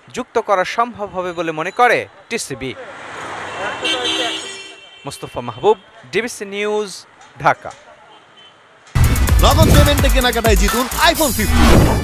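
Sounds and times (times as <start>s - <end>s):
passing traffic: 0.0s - 6.2s, 11.2s - 12.0s
voice: 9.4s - 11.6s.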